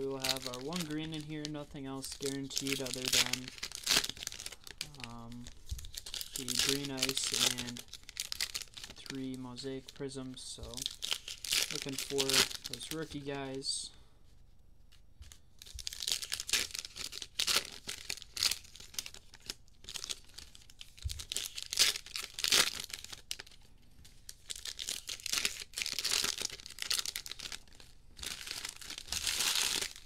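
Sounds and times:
foil packs tearing and crinkling: 0.0 - 9.2, 10.8 - 13.0, 15.8 - 23.6, 24.3 - 30.0.

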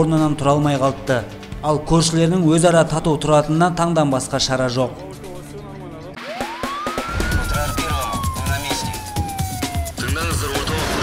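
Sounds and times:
music with low beat: 6.2 - 11.0
siren wail: 6.2 - 11.0.

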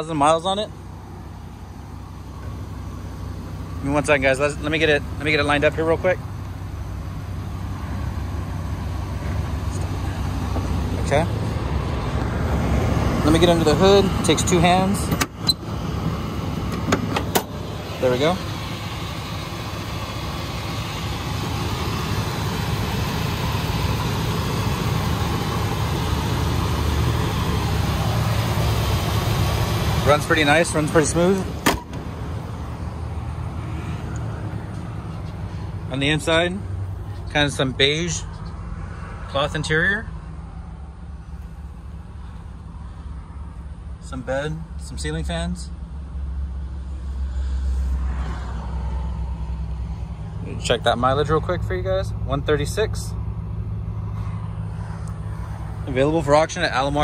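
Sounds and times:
van engine idling: 0.0 - 57.0.

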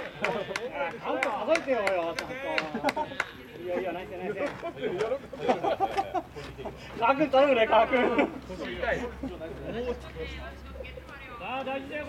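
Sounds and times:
men calling out: 0.0 - 12.0.

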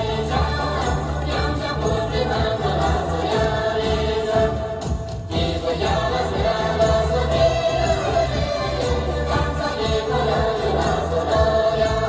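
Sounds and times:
music with pulsing beat: 0.0 - 12.0
voices singing together: 0.0 - 12.0.

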